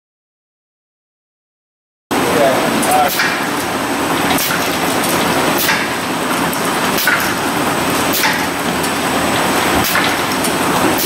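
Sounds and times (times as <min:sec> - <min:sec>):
conveyor clatter and rumble: 0:02.1 - 0:11.0.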